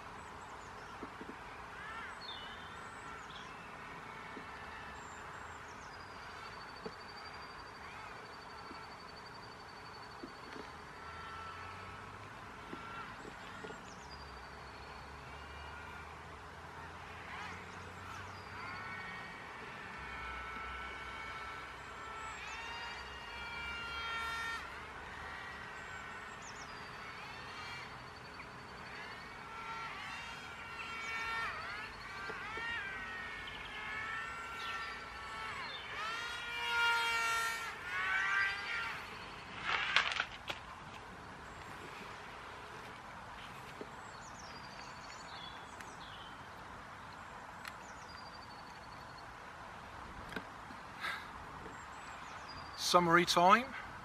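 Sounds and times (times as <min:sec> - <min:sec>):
electric motors and propellers buzzing: 0:00.0 - 0:53.2.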